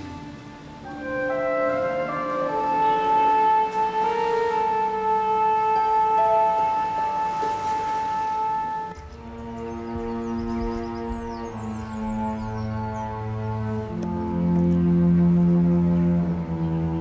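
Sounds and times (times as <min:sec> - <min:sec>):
sustained orchestral chords: 0:00.0 - 0:17.0.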